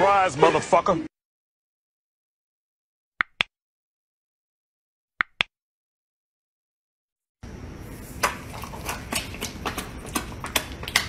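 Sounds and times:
mouse clicks: 0:05.2 - 0:05.5.

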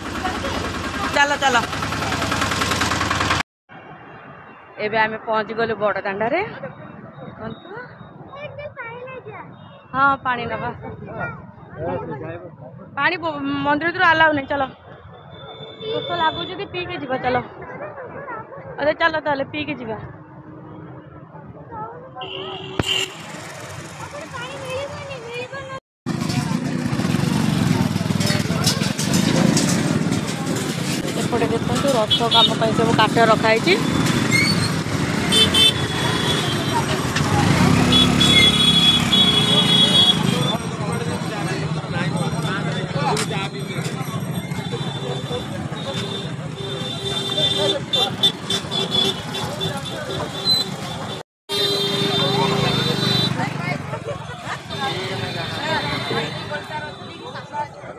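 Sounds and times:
motorcycle engine running: 0:00.0 - 0:03.4, 0:26.1 - 0:57.0
road traffic: 0:00.0 - 0:57.9
street noise: 0:00.0 - 0:57.9
people's voices: 0:04.2 - 0:57.9.

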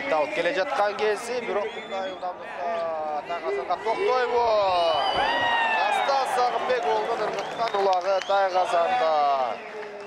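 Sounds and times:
excited male sports commentator: 0:00.0 - 0:09.6.

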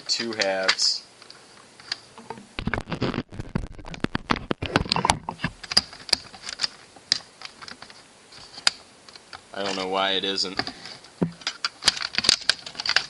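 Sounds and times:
plastic clicks and rattles: 0:10.6 - 0:13.0.

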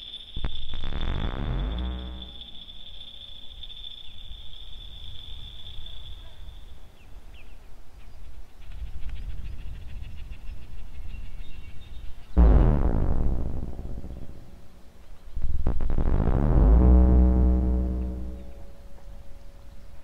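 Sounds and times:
low synthesizer rumble: 0:00.7 - 0:02.5, 0:12.4 - 0:19.4
loud low pitched tone: 0:00.7 - 0:02.6, 0:12.4 - 0:19.3
steady high synthesizer tone: 0:00.7 - 0:02.6, 0:12.4 - 0:15.0, 0:15.7 - 0:18.9.

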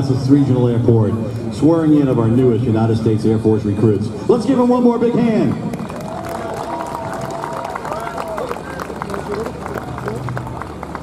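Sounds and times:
crowd voices: 0:00.0 - 0:11.0
crowd applause: 0:05.7 - 0:11.0.

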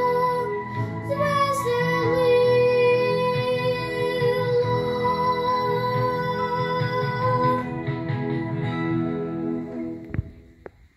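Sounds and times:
girl singing classical style: 0:00.0 - 0:07.9
instrumental accompaniment: 0:00.0 - 0:10.9.

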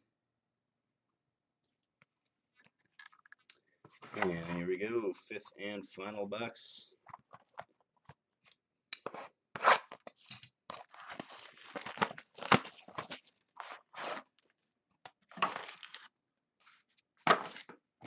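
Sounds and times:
wrapping crinkling and tearing: 0:10.8 - 0:14.3, 0:15.4 - 0:16.8.

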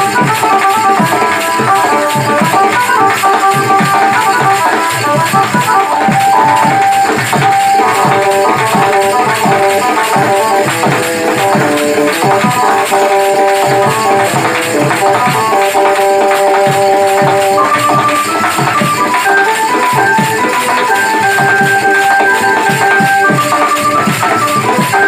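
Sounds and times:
electronic keyboard melody: 0:00.0 - 0:25.0
hand drum rhythm: 0:00.0 - 0:25.0.

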